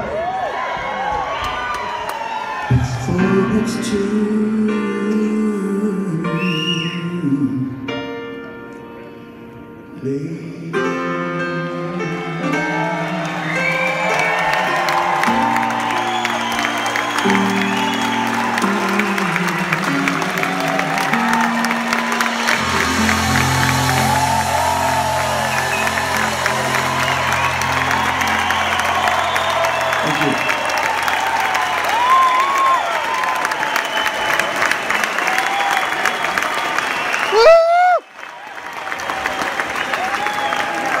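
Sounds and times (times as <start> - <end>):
audience applauding and cheering: 0.0 - 3.8, 12.0 - 41.0
whistles from crowd: 6.4 - 7.1, 13.3 - 19.4, 22.2 - 38.3, 39.3 - 41.0
loud rising whoop: 12.1 - 41.0
band chords ringing: 16.4 - 30.8.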